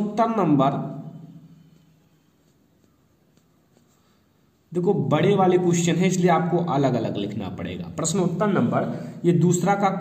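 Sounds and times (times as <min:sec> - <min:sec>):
man speaking: 0:00.0 - 0:01.4, 0:04.7 - 0:10.0.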